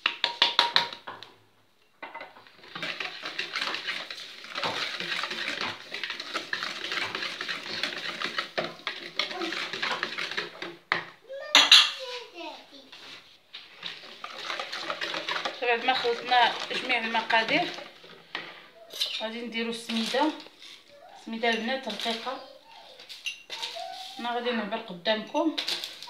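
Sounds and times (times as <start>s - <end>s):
whisk beating batter in bowl: 2.5s - 10.8s, 12.9s - 18.2s.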